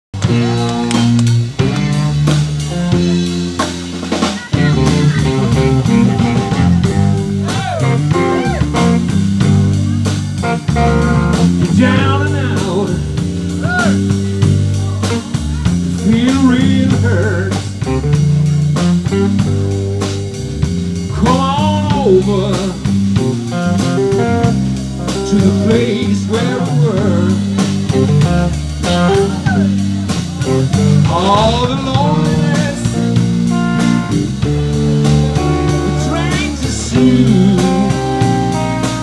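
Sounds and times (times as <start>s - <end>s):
drum kit: 0.1s - 39.0s
electric bass: 0.1s - 39.0s
electric guitar lead with bent notes: 0.2s - 39.0s.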